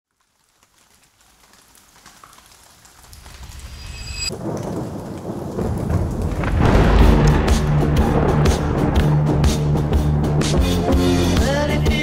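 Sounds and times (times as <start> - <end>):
rain: 0.1 - 12.0
low rumble: 5.7 - 11.6.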